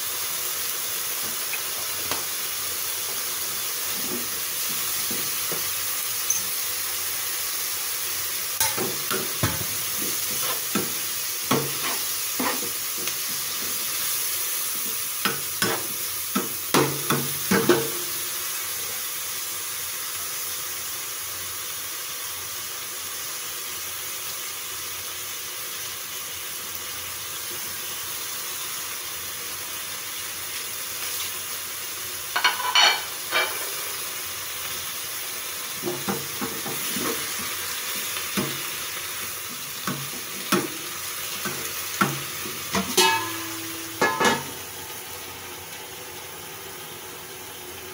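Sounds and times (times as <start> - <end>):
food sizzling in a frying pan: 0.0 - 47.9
spatula scraping a pan: 8.6 - 13.9, 32.4 - 34.0, 35.9 - 37.6.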